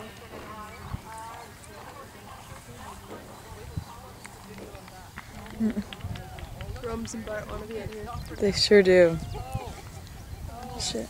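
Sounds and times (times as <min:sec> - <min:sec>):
horse hoofbeats on grass: 0:00.0 - 0:09.8
faint voices: 0:00.0 - 0:11.0.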